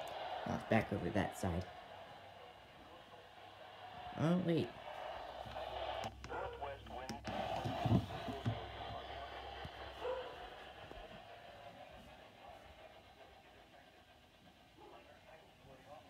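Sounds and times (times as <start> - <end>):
faint radio broadcast voice: 0.0 - 16.0
radio hiss: 6.6 - 16.0.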